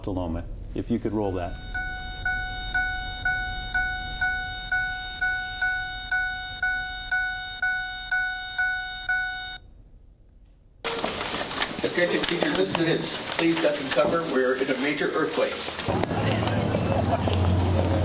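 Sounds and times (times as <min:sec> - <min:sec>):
noisy room sound: 0:00.0 - 0:18.0
pulsing alarm tone: 0:01.4 - 0:09.8.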